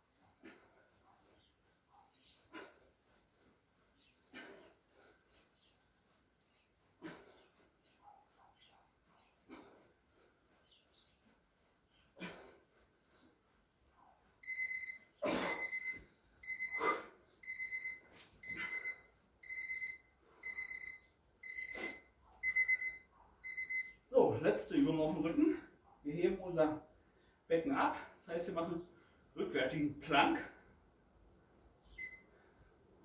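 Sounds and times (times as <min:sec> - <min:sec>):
electronic timer beeping: 0:14.4 - 0:24.0, 0:32.0 - 0:32.3.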